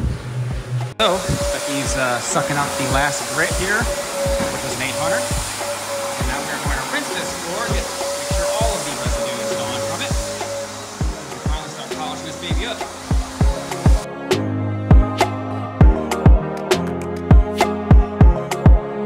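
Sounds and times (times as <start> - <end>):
background music with steady beat: 0.0 - 19.0
shop vacuum motor whine: 1.0 - 14.1.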